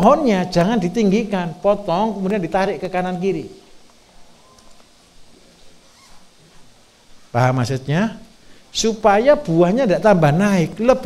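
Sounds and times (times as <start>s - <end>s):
low background hiss: 0.0s - 11.0s
faint clicks and rustles: 3.7s - 7.3s.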